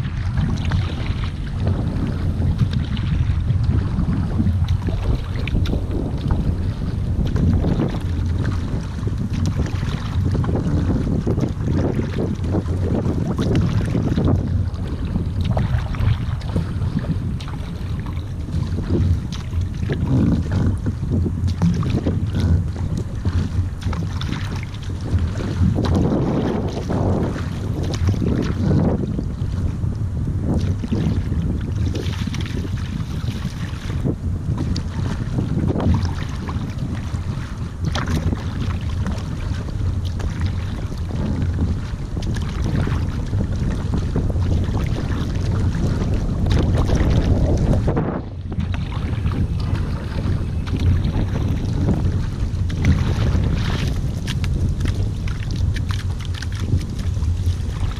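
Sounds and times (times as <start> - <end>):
paddle blades splashing water: 0.0 - 57.9
wind rumble on microphone: 0.0 - 57.9.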